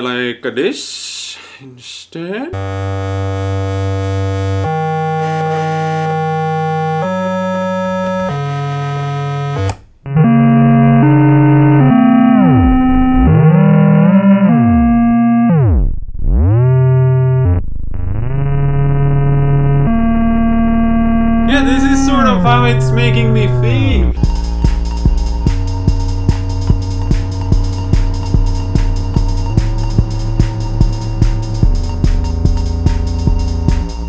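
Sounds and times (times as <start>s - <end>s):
synthesizer pitch swooping: 2.6s - 34.0s
toy synthesizer organ-like notes: 21.4s - 34.0s.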